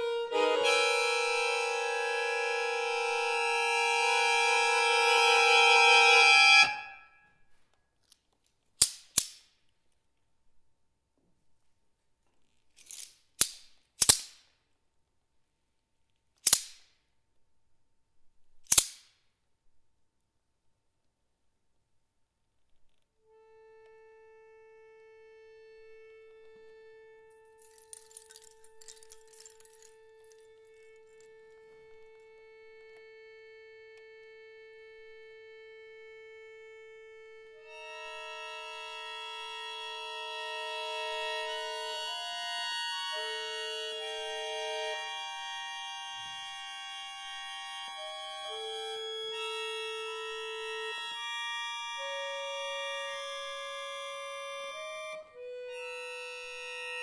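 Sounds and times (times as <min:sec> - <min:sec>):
accordion playing: 0:00.0 - 0:07.2, 0:23.3 - 0:57.0.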